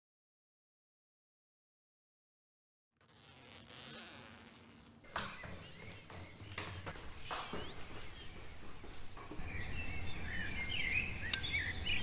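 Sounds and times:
jacket zipper pulled up: 0:03.0 - 0:05.1.

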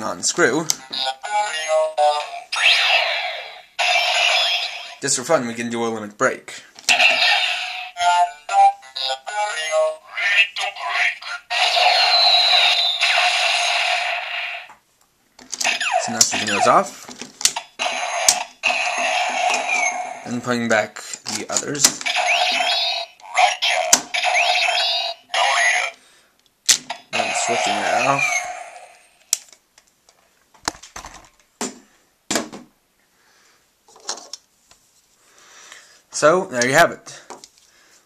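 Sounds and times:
toy belt electronic sound effect: 0:00.8 - 0:05.0, 0:06.9 - 0:14.7, 0:15.6 - 0:16.8, 0:17.6 - 0:20.5, 0:22.0 - 0:26.0, 0:26.9 - 0:29.3.

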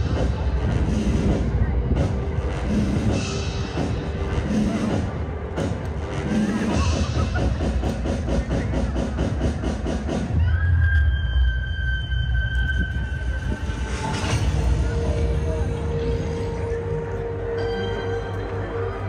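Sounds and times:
dance music: 0:00.0 - 0:19.0.

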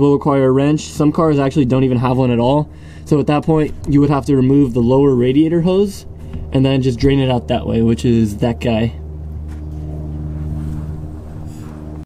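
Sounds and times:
engine humming steadily: 0:00.0 - 0:12.0.

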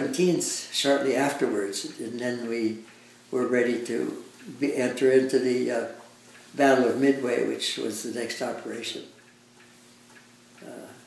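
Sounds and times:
faint steady hum: 0:00.0 - 0:11.0
faint ticks: 0:00.6 - 0:11.0
man saying uh: 0:06.6 - 0:09.1, 0:10.6 - 0:11.0.

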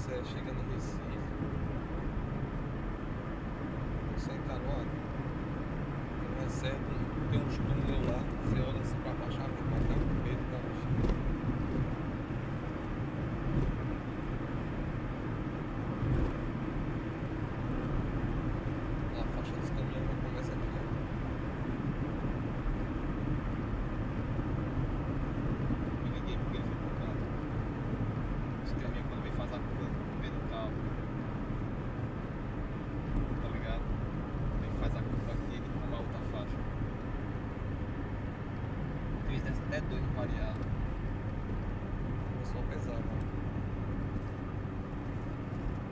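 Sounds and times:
car road noise: 0:00.0 - 0:45.9.

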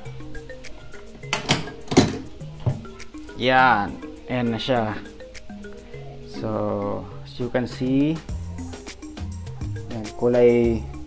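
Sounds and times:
background music: 0:00.0 - 0:11.0
metal latch clacks: 0:01.3 - 0:02.9.

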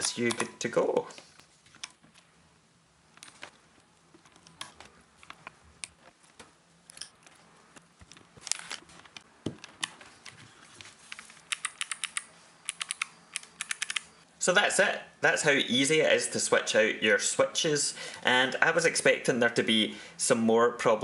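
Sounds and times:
keyboard switches clicking: 0:11.5 - 0:14.1.

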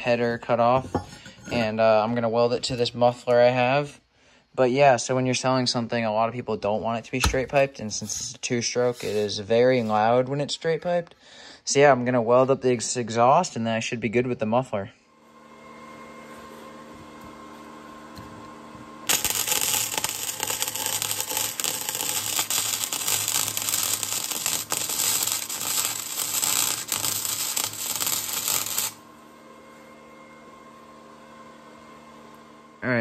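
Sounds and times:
steady hum: 0:07.1 - 0:10.2, 0:15.4 - 0:33.0
arc welding crackle: 0:19.0 - 0:29.0.

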